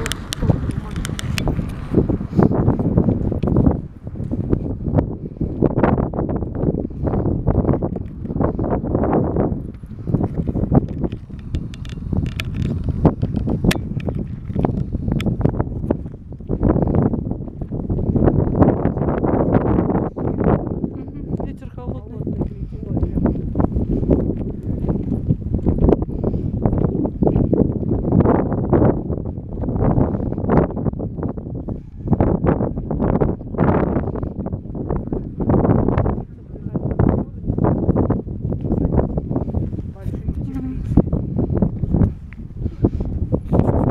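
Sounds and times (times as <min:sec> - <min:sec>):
wind buffeting microphone: 0:00.0 - 0:43.9
small clicks and knocks: 0:10.3 - 0:15.3.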